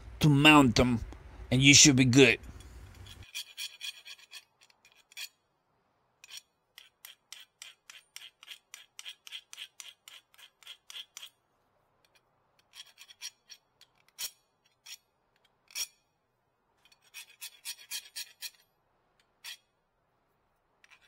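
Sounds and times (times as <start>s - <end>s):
file rasping on brake pad: 2.6s - 5.4s, 6.2s - 11.4s, 12.1s - 15.1s, 16.8s - 18.6s.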